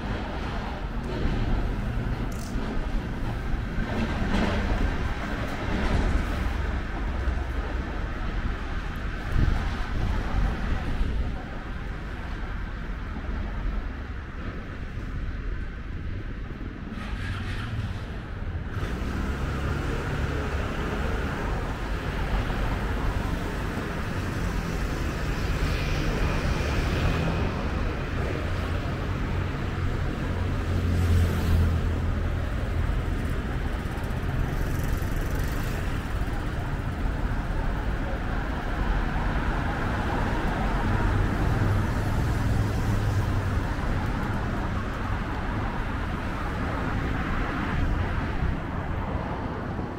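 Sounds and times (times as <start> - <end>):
faint voices of passers-by: 0.0 - 19.0, 19.6 - 49.9
road traffic passing: 0.0 - 49.9.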